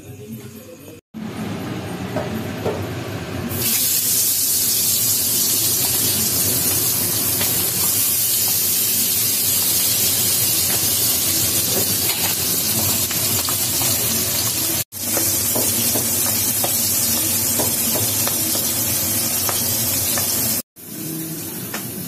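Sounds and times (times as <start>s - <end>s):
fish sizzling in hot oil: 3.6s - 22.0s.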